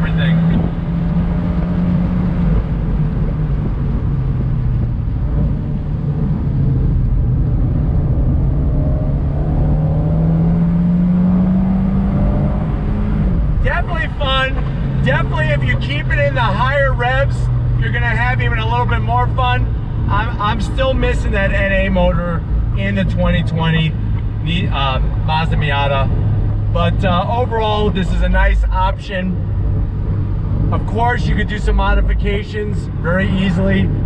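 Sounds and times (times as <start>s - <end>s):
wind noise: 0.0s - 16.1s
car engine running: 0.0s - 34.0s
road noise: 0.0s - 34.0s.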